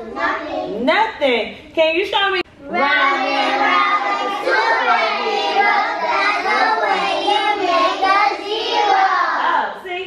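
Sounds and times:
children singing in unison: 2.8 - 9.4.

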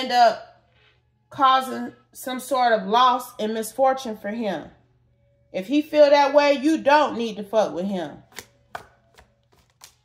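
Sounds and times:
cards shuffling and snapping: 8.3 - 10.0.

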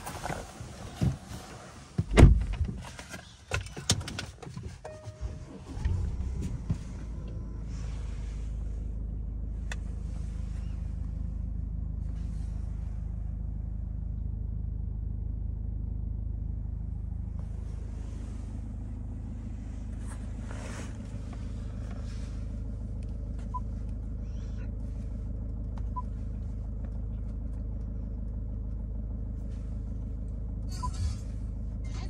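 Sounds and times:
car engine idling: 0.0 - 32.0.

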